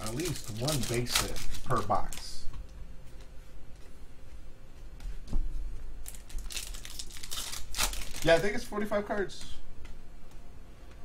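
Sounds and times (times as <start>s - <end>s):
foil wrapper crinkling and tearing: 0.0s - 2.4s, 6.0s - 8.7s.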